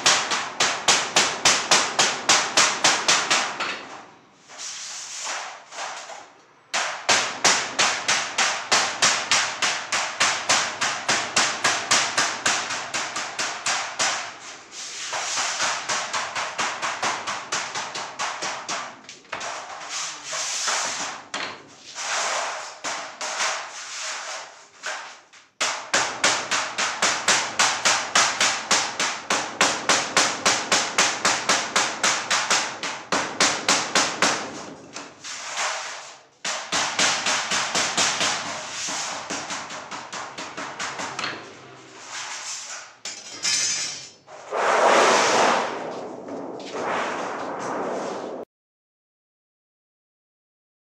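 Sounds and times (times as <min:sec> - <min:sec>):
hammer striking steel sheet: 0:00.0 - 0:04.0, 0:06.8 - 0:21.6, 0:43.1 - 0:48.4.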